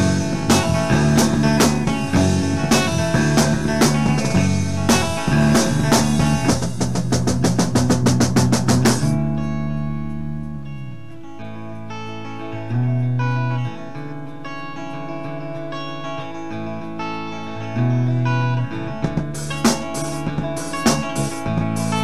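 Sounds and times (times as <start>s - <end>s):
drum kit fill: 0.0s - 9.4s, 19.0s - 22.0s
low bass notes: 0.0s - 15.8s, 16.5s - 22.0s
guitars ringing: 0.0s - 22.0s.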